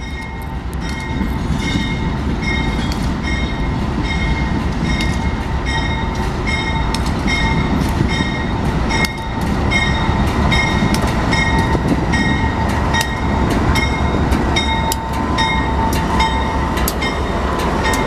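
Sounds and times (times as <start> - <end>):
bell ringing: 0.0 - 18.0
freight train engine rumble: 0.0 - 18.0
train wheels rolling: 0.0 - 18.0.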